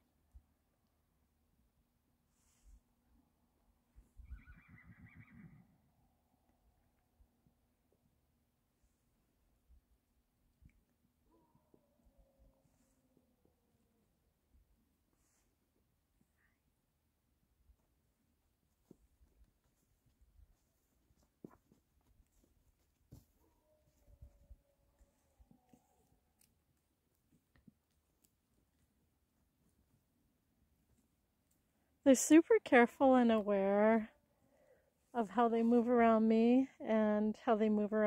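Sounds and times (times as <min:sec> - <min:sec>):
horse whinnying faintly: 0:04.2 - 0:05.8.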